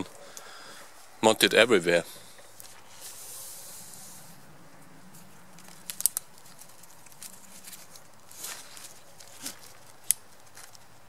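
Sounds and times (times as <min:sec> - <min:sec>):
soft hiss: 0:00.0 - 0:11.0
fabric rustling: 0:05.1 - 0:10.8.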